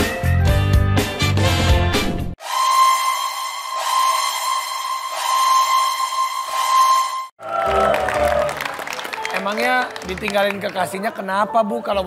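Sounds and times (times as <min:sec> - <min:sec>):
held electronic music tone: 0:02.4 - 0:07.9.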